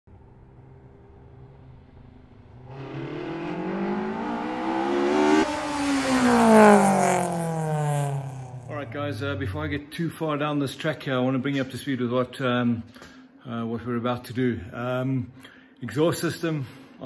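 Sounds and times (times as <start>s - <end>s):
race car engine accelerating: 0.2s - 9.9s.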